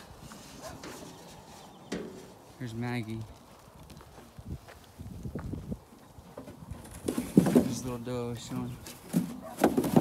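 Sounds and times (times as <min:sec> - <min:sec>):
footsteps on loose dirt: 0:00.0 - 0:10.0.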